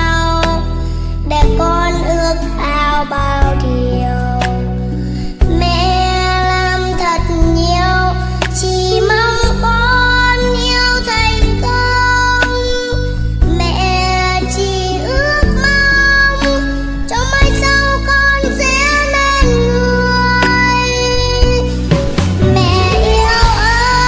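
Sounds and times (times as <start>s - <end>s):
backing track with bass line: 0.0s - 24.0s
girl singing: 0.0s - 24.0s.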